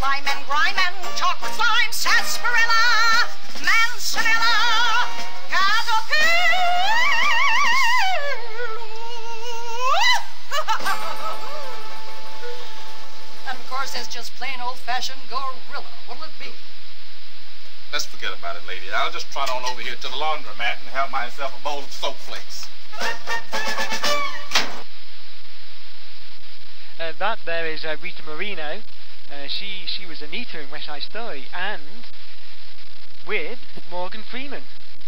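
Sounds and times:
faint steady hiss: 0.0s - 35.0s
comedy sketch music: 2.1s - 13.0s, 22.9s - 24.8s
woman singing theatrically: 5.6s - 11.9s
light musical accompaniment: 22.9s - 24.8s.

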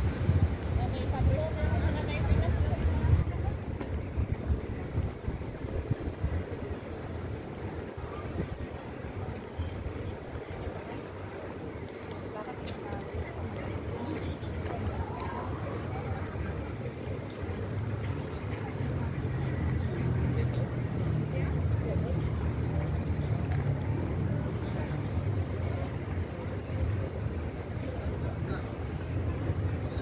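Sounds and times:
low city rumble: 0.0s - 30.0s
voices of passers-by: 0.0s - 30.0s.

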